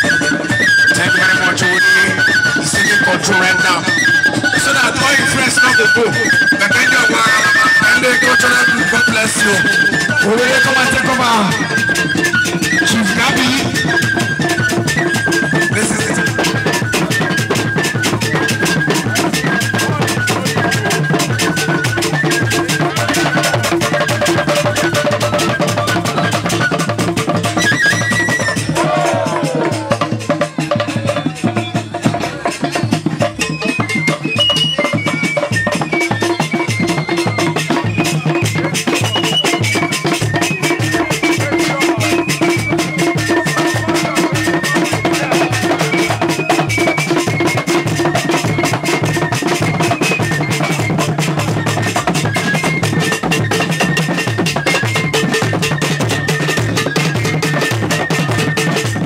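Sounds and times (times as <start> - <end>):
barrel drums playing fast rhythm: 0.0 - 59.0
held high tone: 0.0 - 59.0
thin high melody: 0.0 - 59.0.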